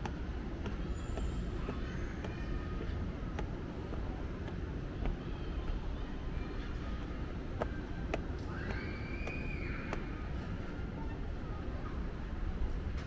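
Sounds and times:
footsteps on stone stairs: 0:00.0 - 0:05.2, 0:07.6 - 0:10.0
city traffic rumble: 0:00.0 - 0:13.0.

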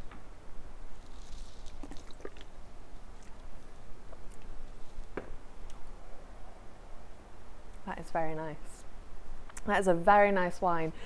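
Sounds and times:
slurping wine: 0:01.7 - 0:02.5.

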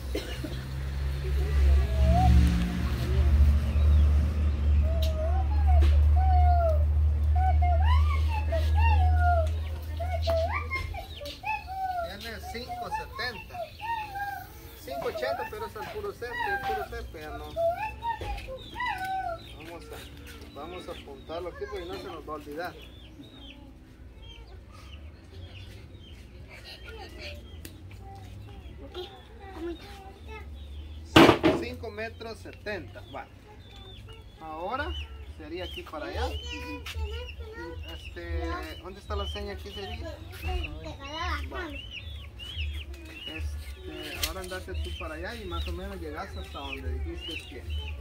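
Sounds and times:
hens clucking: 0:01.2 - 0:27.8, 0:30.8 - 0:48.0
animal calls: 0:04.8 - 0:21.0.

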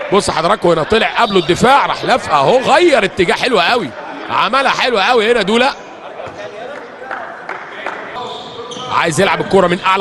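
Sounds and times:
sports hall background: 0:00.0 - 0:10.0.

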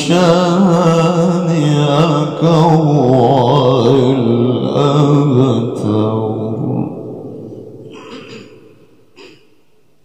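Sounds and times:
man reciting melodically into microphone: 0:00.0 - 0:08.7.

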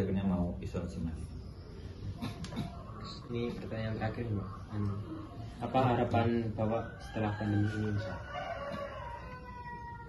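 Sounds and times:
rooster crowing: 0:06.6 - 0:10.0.

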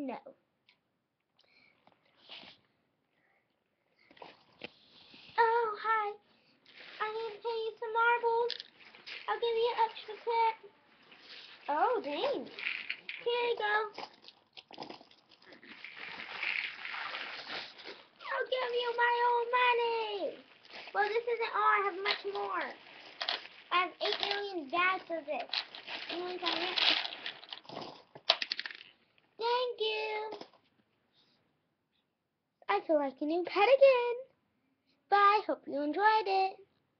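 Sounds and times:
child's drawn-out voice: 0:05.4 - 0:06.2, 0:06.9 - 0:08.5, 0:09.2 - 0:10.7, 0:11.6 - 0:12.6, 0:13.2 - 0:14.0, 0:18.2 - 0:22.8, 0:23.7 - 0:27.1, 0:29.4 - 0:30.5
plastic clog rustling: 0:11.1 - 0:19.1, 0:20.4 - 0:28.9.

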